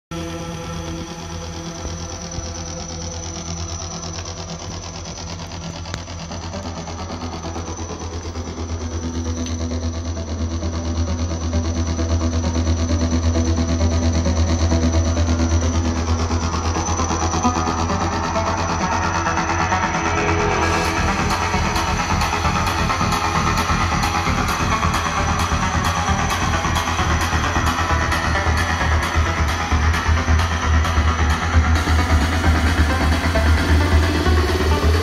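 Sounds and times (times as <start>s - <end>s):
bass-heavy music with fast beat: 0.0s - 35.0s.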